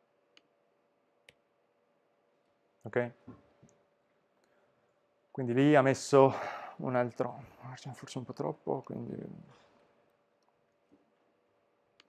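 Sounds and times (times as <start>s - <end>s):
faint room hum: 0.0s - 12.0s
man speaking: 2.9s - 3.2s, 5.4s - 9.5s.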